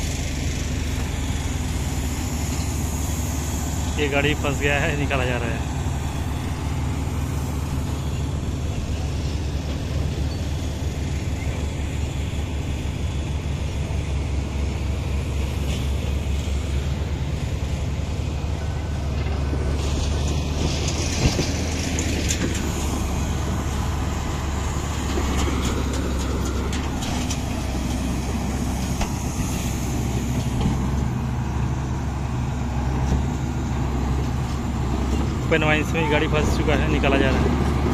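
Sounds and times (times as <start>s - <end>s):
bulldozer diesel engine under load: 0.0s - 37.9s.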